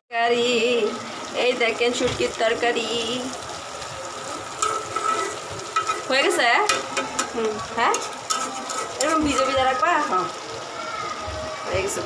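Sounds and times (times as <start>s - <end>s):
vegetables sizzling: 0.1s - 12.0s
spatula scraping vegetables: 4.2s - 9.8s.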